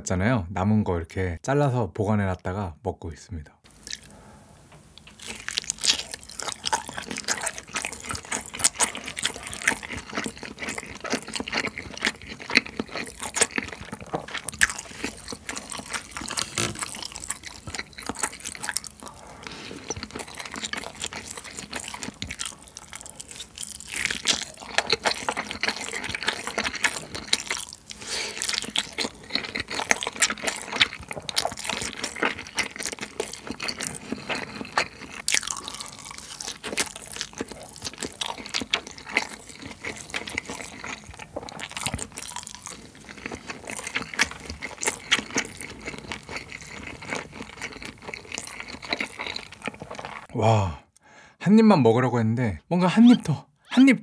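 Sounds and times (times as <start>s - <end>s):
wet chewing: 3.7s - 4.2s, 4.9s - 50.3s.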